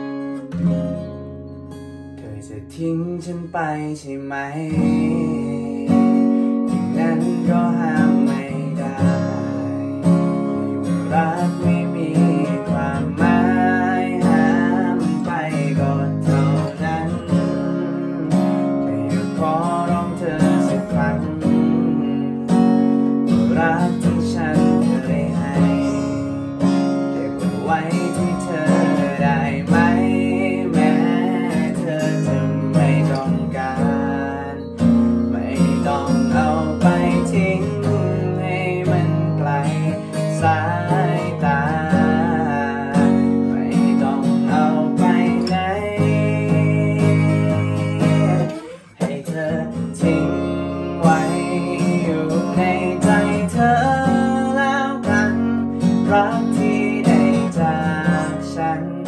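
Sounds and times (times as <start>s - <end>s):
strummed acoustic guitar: 0.0s - 59.0s
man singing: 2.1s - 59.0s.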